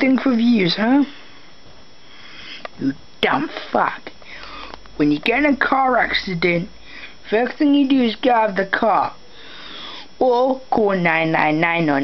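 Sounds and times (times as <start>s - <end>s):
low steady hiss: 0.0s - 12.0s.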